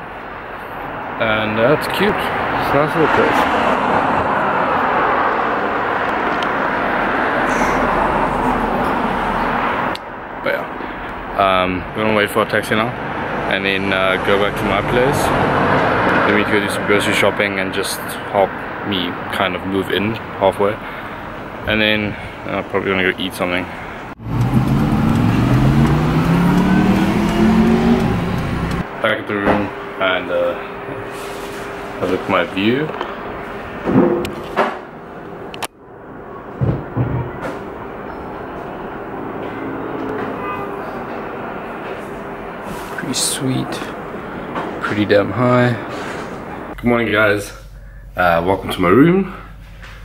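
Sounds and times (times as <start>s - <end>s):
passing traffic: 0.0s - 50.0s
car engine accelerating: 24.1s - 28.9s, 34.8s - 46.8s.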